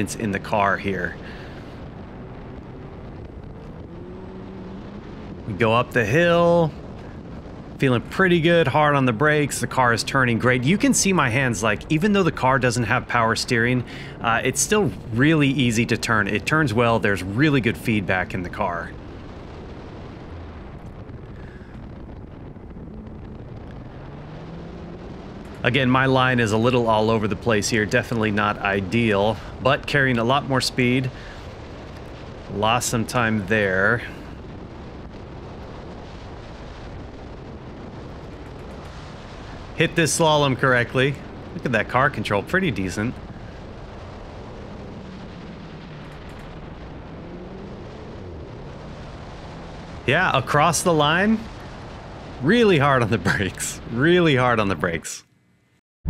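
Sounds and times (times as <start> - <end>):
car engine: 0.0 - 8.3, 22.1 - 28.4, 37.9 - 53.6
wind rushing over microphone: 0.0 - 55.1.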